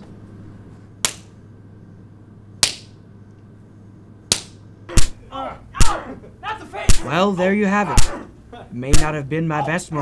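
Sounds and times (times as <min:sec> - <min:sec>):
faint room hum: 0:00.0 - 0:10.0
slaps to the face: 0:01.0 - 0:01.3, 0:02.6 - 0:03.0, 0:04.3 - 0:05.2.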